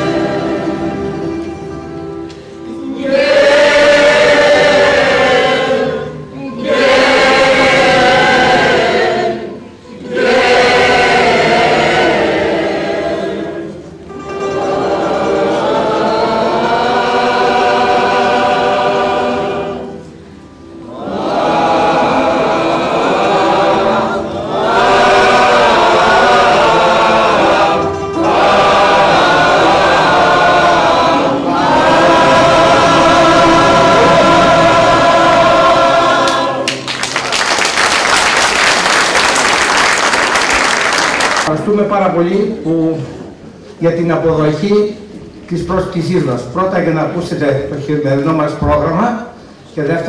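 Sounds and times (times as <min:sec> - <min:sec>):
mixed choir singing: 0:00.0 - 0:41.5.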